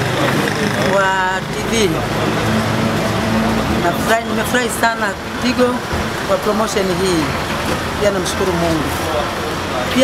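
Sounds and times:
motor traffic noise: 0:00.0 - 0:10.0.

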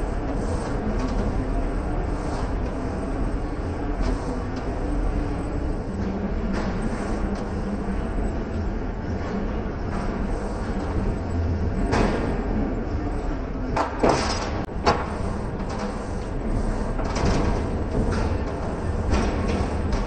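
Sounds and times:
rumbling gym background noise: 0:00.0 - 0:20.0.

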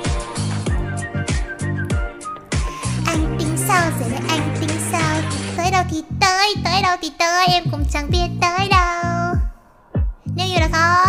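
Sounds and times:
high whistle-like lead melody: 0:00.0 - 0:03.0
electronic kick drum: 0:00.0 - 0:03.4, 0:08.1 - 0:10.8
bass line: 0:00.0 - 0:06.9, 0:07.6 - 0:11.0.

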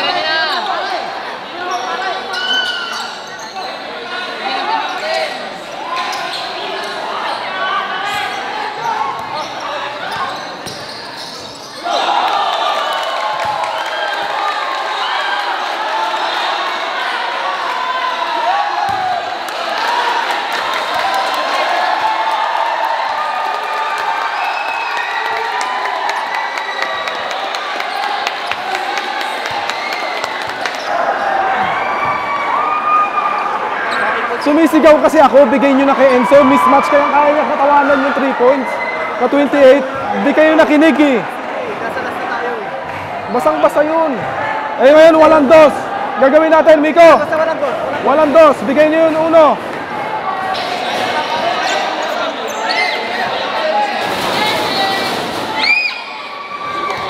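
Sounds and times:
crowd chatter and shouts: 0:00.0 - 0:57.0
basketball bouncing: 0:18.9 - 0:19.1.

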